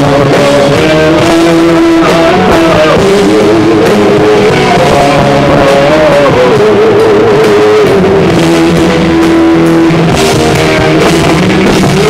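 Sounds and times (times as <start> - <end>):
bass guitar: 0.0 - 12.0
drum kit: 0.0 - 12.0
electric guitar: 0.0 - 12.0
wavering lead guitar line: 0.0 - 12.0.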